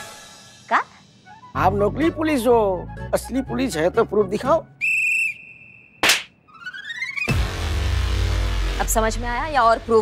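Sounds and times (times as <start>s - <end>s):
whistle-like comic sound effect: 4.8s - 7.3s.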